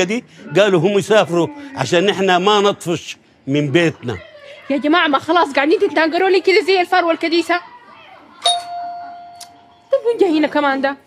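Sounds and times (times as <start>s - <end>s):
doorbell chime: 8.4s - 9.4s.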